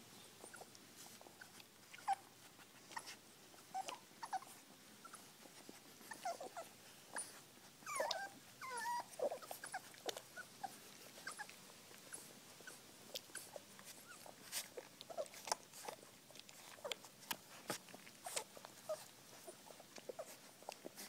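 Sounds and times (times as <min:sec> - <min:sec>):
puppies whimpering: 0:00.4 - 0:21.0.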